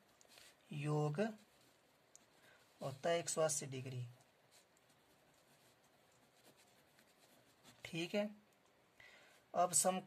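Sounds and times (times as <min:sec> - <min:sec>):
pen scratching on paper: 0:04.5 - 0:07.8.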